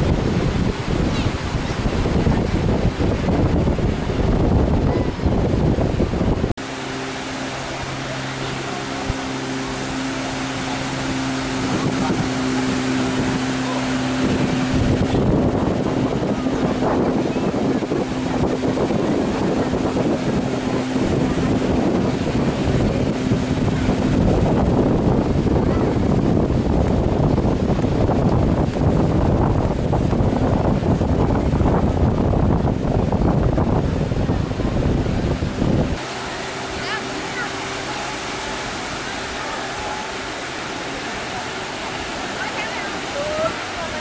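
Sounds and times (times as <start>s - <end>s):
beach waves: 0.0s - 44.0s
motorboat drone: 0.0s - 44.0s
surf: 0.0s - 44.0s
wind buffeting microphone: 0.0s - 44.0s.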